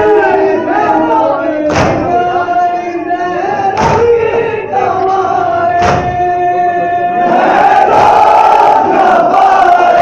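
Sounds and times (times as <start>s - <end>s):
men chanting a lament: 0.0s - 10.0s
hands slapping chests in unison: 1.7s - 2.1s, 3.8s - 4.1s.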